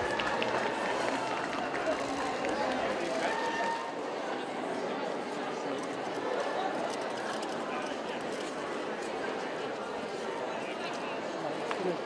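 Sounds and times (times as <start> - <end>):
crowd talking and cheering: 0.0 - 12.0.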